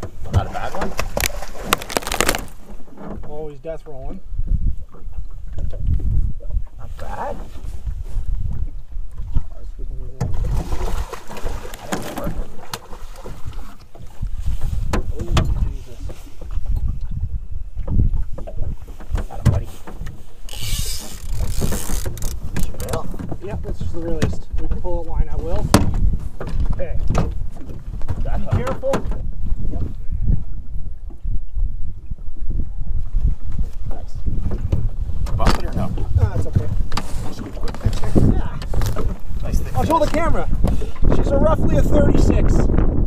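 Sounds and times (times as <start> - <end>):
water chop on boat: 0.0 - 3.5, 8.4 - 17.2, 17.8 - 30.0, 34.3 - 42.4
wind buffeting microphone: 0.0 - 43.0.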